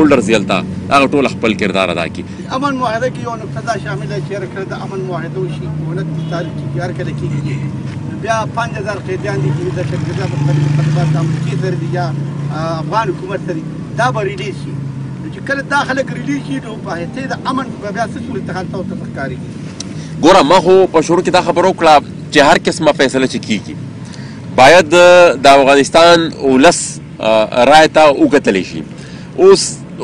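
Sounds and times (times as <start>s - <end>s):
man talking: 0.0s - 23.8s, 24.6s - 30.0s.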